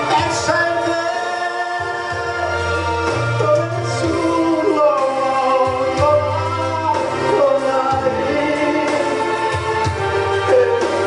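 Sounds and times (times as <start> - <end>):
accompanying music with bass line: 0.0 - 11.0
man singing a ballad: 0.0 - 11.0.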